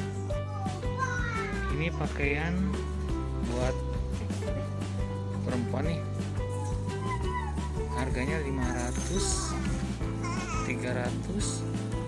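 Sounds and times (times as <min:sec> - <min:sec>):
music with steady beat: 0:00.0 - 0:08.6, 0:09.3 - 0:12.0.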